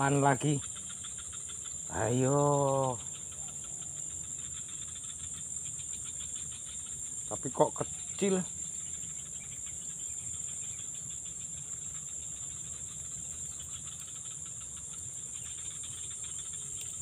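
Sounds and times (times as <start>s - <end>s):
high-pitched insect chorus: 0.0s - 17.0s.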